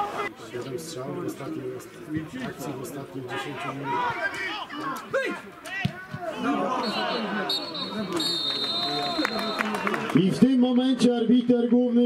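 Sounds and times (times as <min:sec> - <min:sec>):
referee's whistle blasts: 0:06.7 - 0:09.8.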